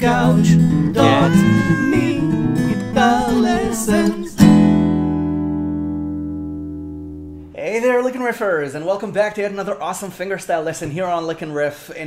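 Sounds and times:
acoustic guitar chord ringing: 0.0 - 7.6.

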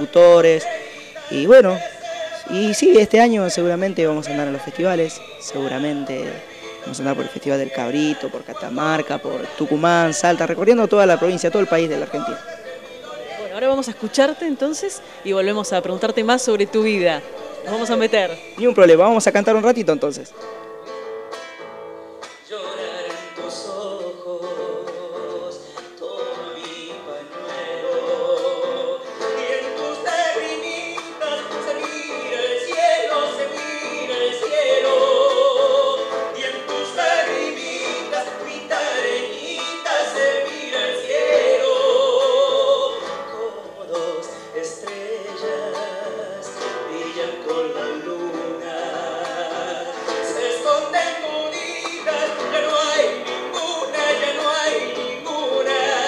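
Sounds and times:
man singing with vibrato: 0.0 - 20.5, 22.3 - 56.0
nylon-string acoustic guitar: 0.0 - 56.0.

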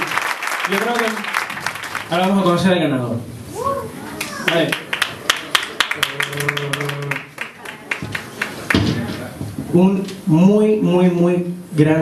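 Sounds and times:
audience clapping: 0.0 - 2.7, 4.2 - 9.3.

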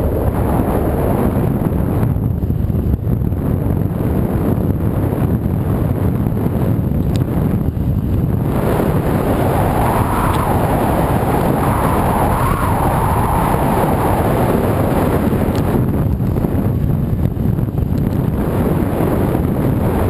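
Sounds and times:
wind rushing over microphone: 0.0 - 20.0
hissing rush: 8.4 - 15.4.

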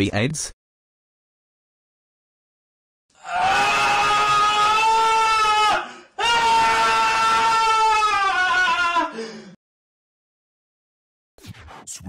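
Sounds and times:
person screaming: 3.2 - 9.5.

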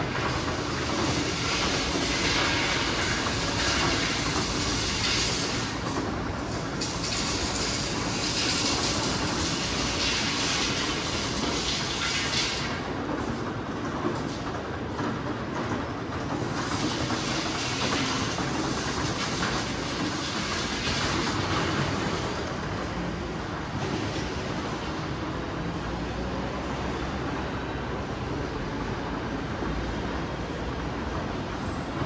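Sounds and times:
hiss: 0.0 - 12.9, 16.4 - 22.5
rail vehicle rumbling on track: 0.0 - 32.0.

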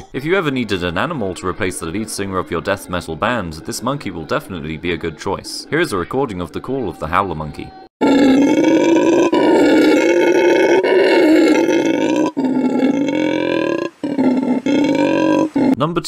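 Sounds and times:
howler monkey roaring: 8.0 - 15.8.

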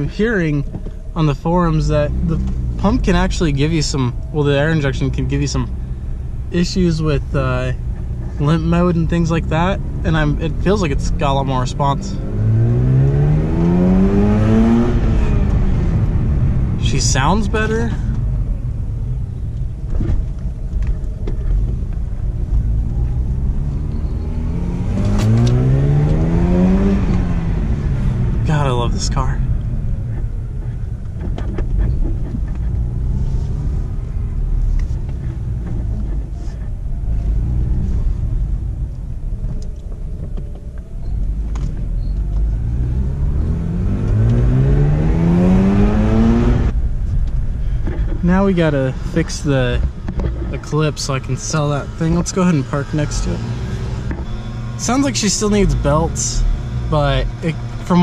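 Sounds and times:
rotary engine from inside car: 9.9 - 58.0.

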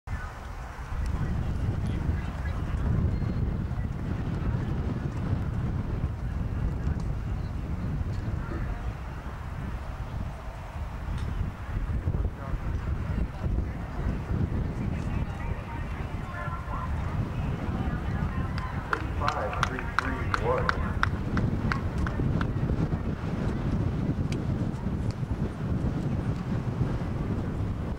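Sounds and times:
wind rumbling on microphone: 0.1 - 27.9.

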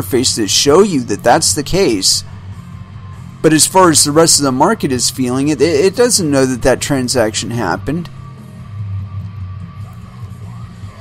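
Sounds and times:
quiet guitar music with bass: 0.0 - 11.0.

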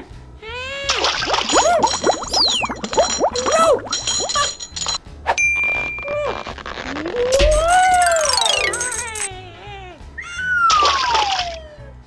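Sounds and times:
bell-like ding: 5.4 - 6.1.

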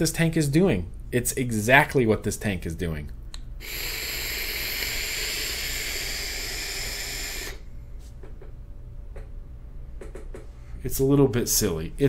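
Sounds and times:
person exhaling: 3.6 - 7.7
vape hissing on a draw: 3.6 - 7.7.

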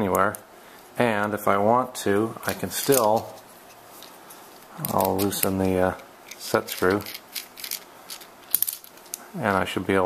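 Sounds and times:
screwdriver ticking and scraping: 6.3 - 8.3.

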